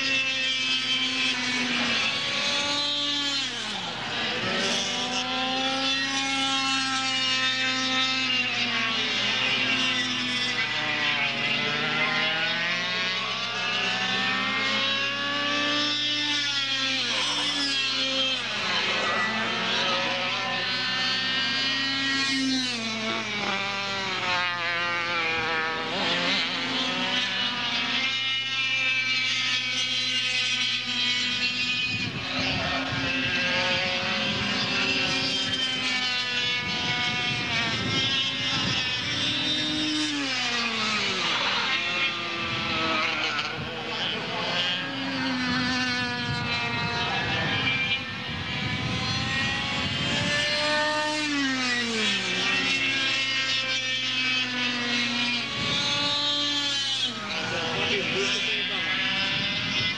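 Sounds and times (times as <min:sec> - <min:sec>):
kart engines racing: 0:00.0 - 0:59.9.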